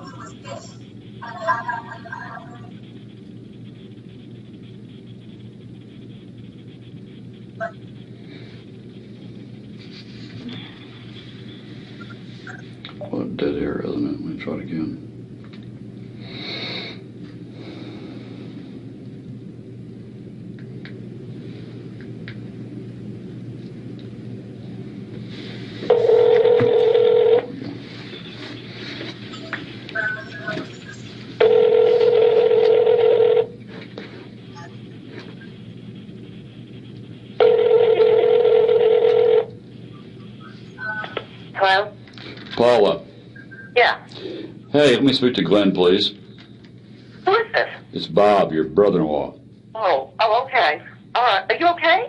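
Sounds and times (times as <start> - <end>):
phone ringback tone: 25.9 - 27.6, 31.4 - 33.6, 37.4 - 39.5.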